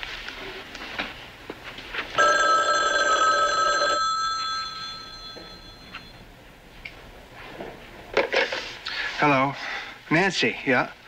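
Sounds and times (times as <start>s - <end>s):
telephone bell ringing: 2.2s - 6.2s.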